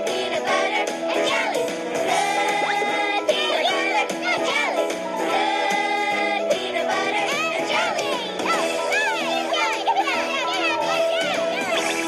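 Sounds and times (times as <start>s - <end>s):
children cheering and laughing: 6.8s - 12.0s.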